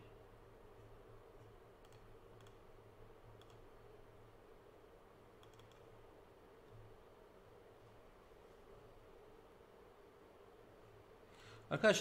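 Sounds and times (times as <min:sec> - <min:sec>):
low steady hum: 0:00.0 - 0:12.0
faint computer mouse clicks: 0:01.8 - 0:02.6, 0:03.4 - 0:03.6, 0:05.4 - 0:05.9.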